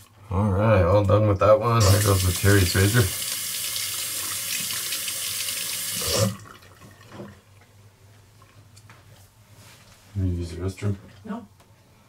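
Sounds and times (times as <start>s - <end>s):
water running from tap into sink: 1.7s - 7.4s.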